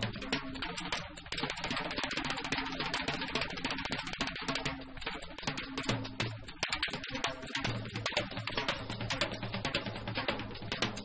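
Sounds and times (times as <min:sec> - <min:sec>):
drums on cymbals and snare: 0:00.0 - 0:11.0.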